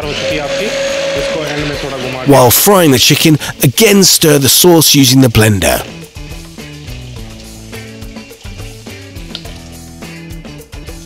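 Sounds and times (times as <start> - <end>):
hand blender motor whine: 0.0 - 2.3.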